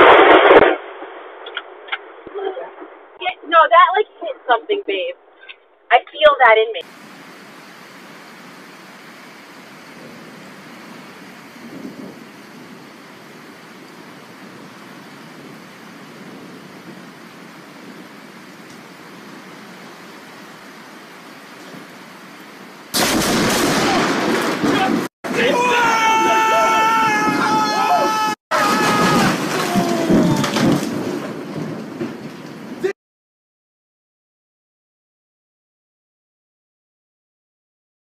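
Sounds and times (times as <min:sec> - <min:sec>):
loud lightning crack: 0:00.0 - 0:03.2, 0:06.8 - 0:22.1, 0:22.9 - 0:32.9
rain hissing: 0:06.8 - 0:33.0.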